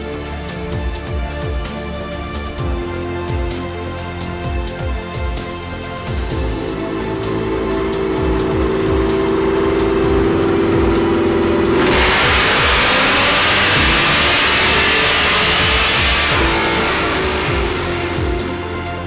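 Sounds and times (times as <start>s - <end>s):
music with steady beat: 0.0s - 19.0s
car engine revving on dyno: 6.3s - 19.0s.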